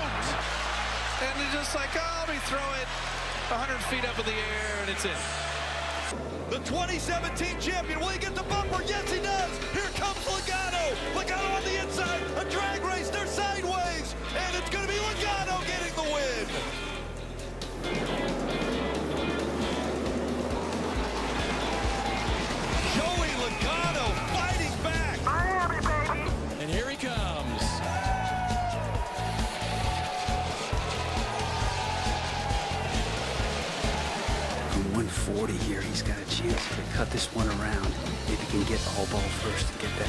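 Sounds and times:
background music with bass line: 6.8s - 40.0s
person speaking: 25.2s - 26.3s.

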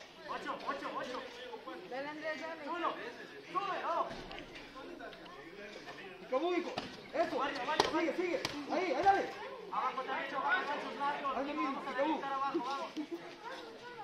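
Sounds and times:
spectators chattering: 0.0s - 14.0s.

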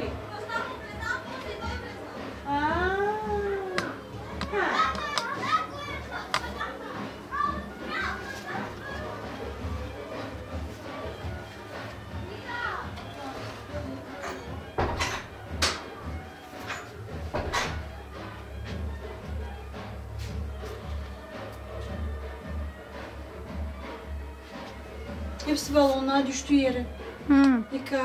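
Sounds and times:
children calling and chattering: 0.0s - 19.5s
background music with bass beat: 9.2s - 25.8s.

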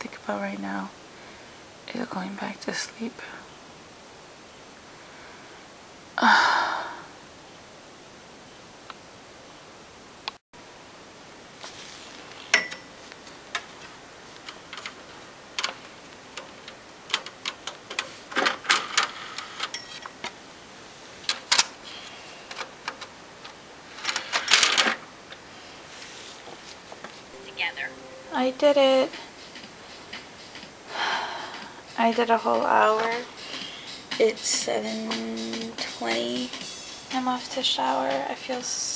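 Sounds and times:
steady hiss: 0.0s - 38.9s.

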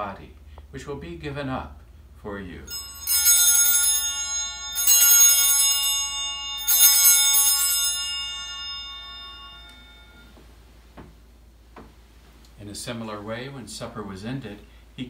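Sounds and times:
altar bells ringing: 2.7s - 10.6s.

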